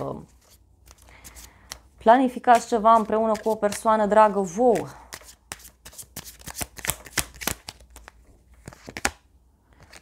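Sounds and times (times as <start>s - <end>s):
cards being shuffled: 0.3s - 1.9s, 2.5s - 4.0s, 4.7s - 10.0s.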